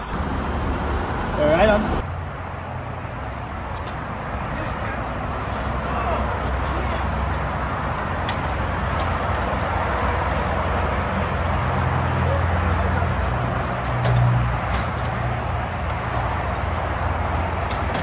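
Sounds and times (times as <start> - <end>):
heavy vehicle passing: 0.0 - 18.0
road traffic rushing: 0.0 - 18.0.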